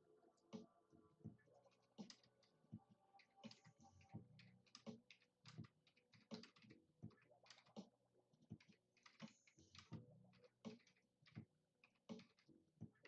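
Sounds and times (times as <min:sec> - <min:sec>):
faint irregular clicks: 0:03.2 - 0:12.6.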